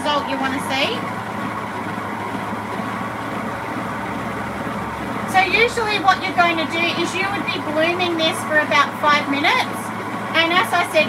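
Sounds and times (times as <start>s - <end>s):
stand mixer motor hum: 0.0s - 11.0s.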